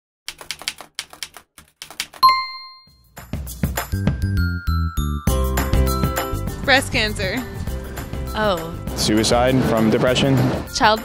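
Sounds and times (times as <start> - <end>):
typewriter bell ding: 2.2 - 3.0.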